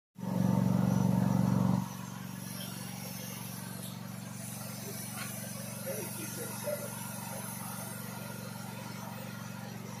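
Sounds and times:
motor running with low pulse: 0.2 - 10.0.

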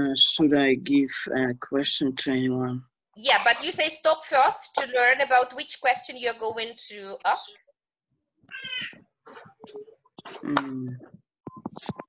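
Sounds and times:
cat meowing: 8.5 - 9.0.

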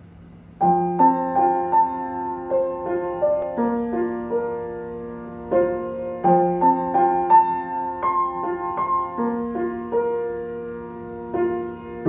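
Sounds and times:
faint steady hum: 0.0 - 12.0
slow piano accompaniment: 0.0 - 12.0.

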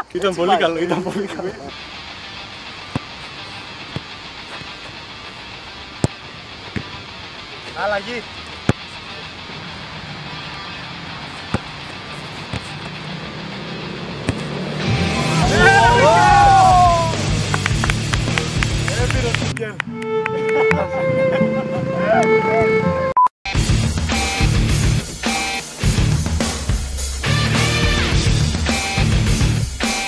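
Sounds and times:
street traffic hum: 0.0 - 23.1
boot kicking football: 2.8 - 3.3, 6.0 - 7.0, 8.6 - 9.0, 11.3 - 13.0, 14.2 - 14.6.

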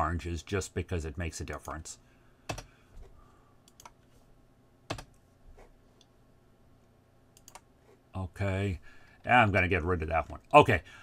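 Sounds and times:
faint room hiss: 0.0 - 11.0
computer mouse clicks: 2.5 - 2.7, 3.6 - 4.2, 7.4 - 7.7.

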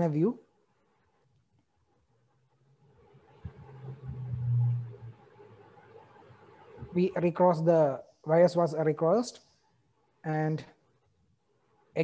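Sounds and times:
low rumble: 3.2 - 5.9.

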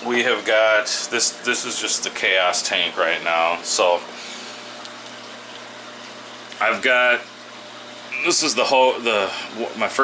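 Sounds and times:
aquarium filter hum: 0.0 - 10.0.

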